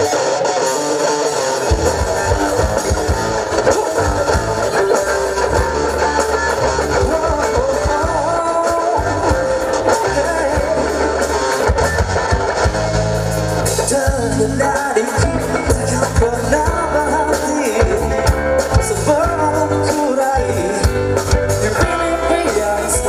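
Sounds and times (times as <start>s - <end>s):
electric guitar: 0.0s - 23.0s
live band playing: 0.0s - 23.0s
man singing: 3.5s - 11.6s, 13.6s - 23.0s.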